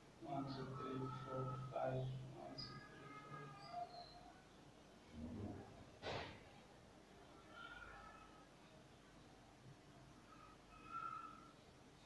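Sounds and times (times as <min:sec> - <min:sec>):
faint high chirps: 0:00.4 - 0:04.6.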